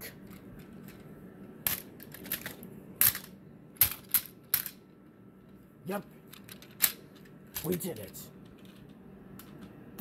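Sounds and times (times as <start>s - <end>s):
plastic toy parts clicking: 1.6s - 4.8s, 6.3s - 9.7s.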